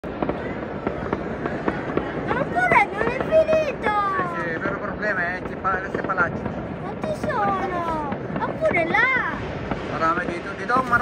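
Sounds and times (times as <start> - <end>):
fireworks bangs: 0.0 - 11.0
fireworks crackling: 0.0 - 11.0.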